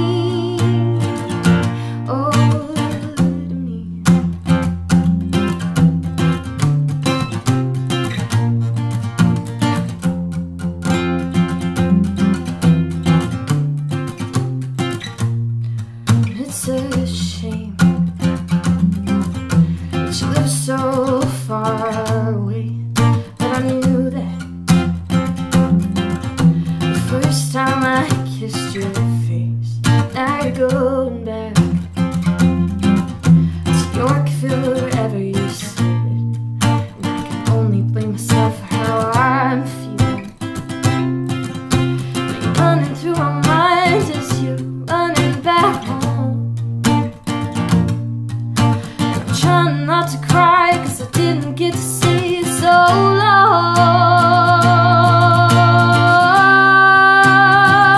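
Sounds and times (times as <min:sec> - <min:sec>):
woman singing: 0:00.0 - 0:04.6, 0:16.1 - 0:47.2, 0:48.6 - 0:57.9
acoustic guitar strumming: 0:00.0 - 0:57.9.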